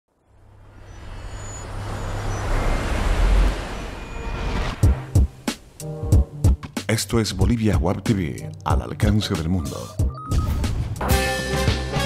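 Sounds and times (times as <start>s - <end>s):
whoosh sound effect: 0.7s - 5.8s.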